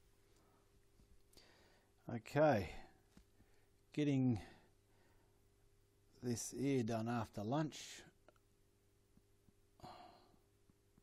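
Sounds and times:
person sighing: 9.8s - 10.4s.

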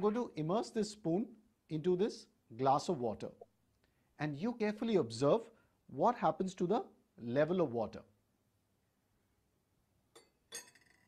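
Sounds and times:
spoon clinking against glass: 10.1s - 11.0s.

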